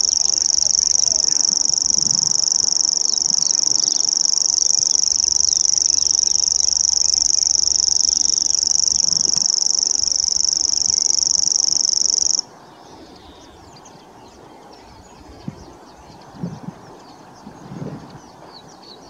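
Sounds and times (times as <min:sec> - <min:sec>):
bird reeling trill: 0:00.0 - 0:12.5.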